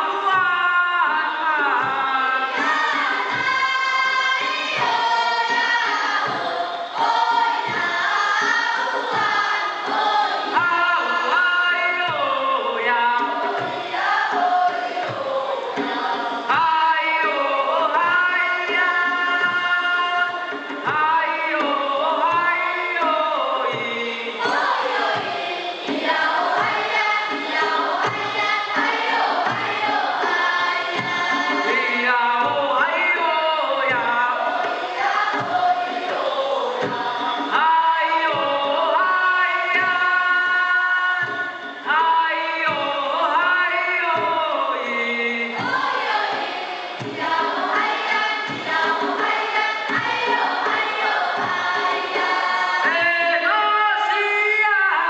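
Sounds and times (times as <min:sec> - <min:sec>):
chorus of young voices singing: 0:00.0 - 0:55.0.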